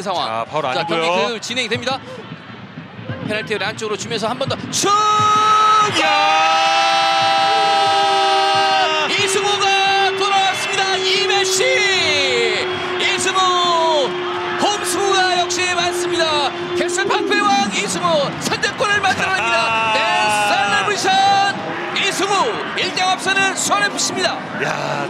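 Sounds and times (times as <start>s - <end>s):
stadium crowd noise: 0.0s - 25.0s
commentator's drawn-out goal shout: 7.4s - 24.4s
excited shouts: 19.2s - 21.4s.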